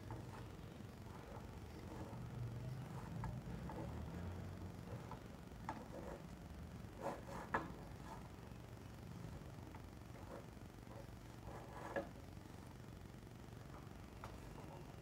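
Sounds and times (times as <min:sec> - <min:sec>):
hand mixing batter in steel bowl: 0:00.0 - 0:12.6
low steady hum: 0:00.0 - 0:15.0.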